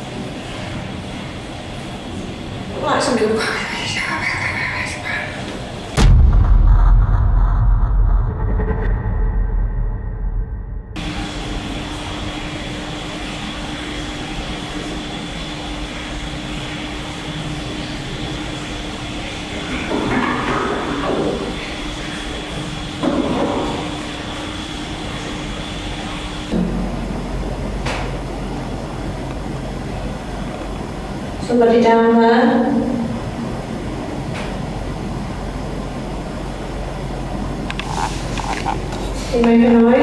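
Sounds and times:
low hum: 4.4s - 14.8s, 23.6s - 31.8s
sharp knock: 6.0s - 8.9s
muffled noises: 32.6s - 40.0s.

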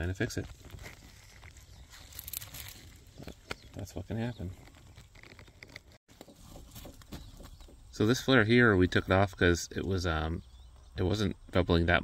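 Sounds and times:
crinkly rustle: 0.2s - 7.1s
gloved hands rustling: 0.4s - 7.6s.

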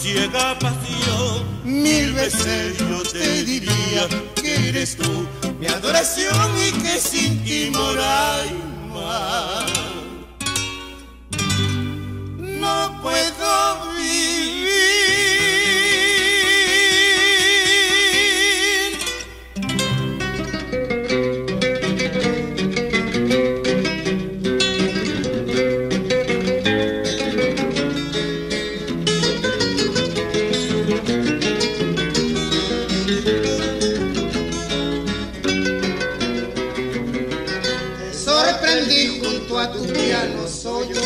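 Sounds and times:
person singing: 0.0s - 10.4s, 12.4s - 19.4s
acoustic guitars playing: 0.0s - 41.0s.

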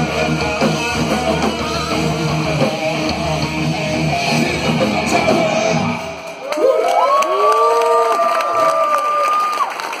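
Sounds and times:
concert crowd cheering: 4.4s - 10.0s.

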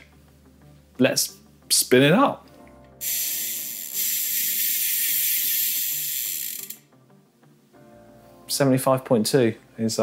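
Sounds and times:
bicycle freehub buzzing: 3.0s - 6.8s.

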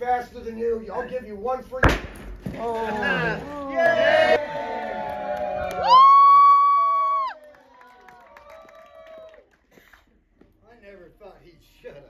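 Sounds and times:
audience cheering and shouting: 2.8s - 7.4s
high-pitched whoop: 3.5s - 9.4s.

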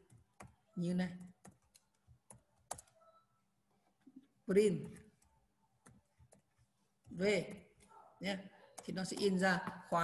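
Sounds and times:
computer keyboard keystrokes: 0.0s - 3.0s.

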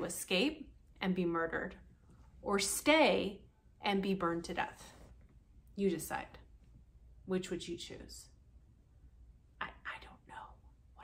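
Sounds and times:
faint low hum: 0.0s - 11.0s
woman whispering: 9.6s - 11.0s.

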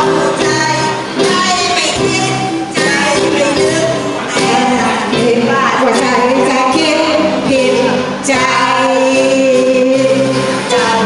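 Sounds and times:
live band accompaniment: 0.0s - 11.0s
women singing into microphones: 0.0s - 11.0s.

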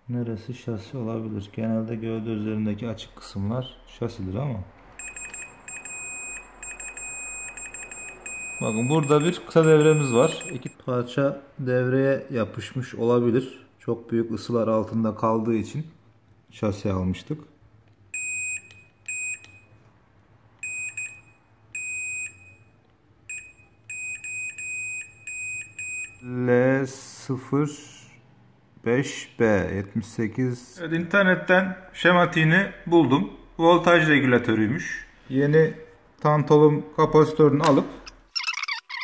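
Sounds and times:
multimeter high beep: 5.0s - 10.8s, 18.2s - 19.7s, 20.6s - 26.4s.

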